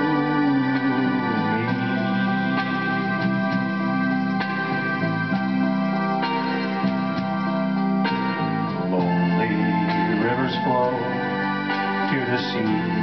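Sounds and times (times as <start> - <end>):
organ-like keyboard chords: 0.0 - 13.0.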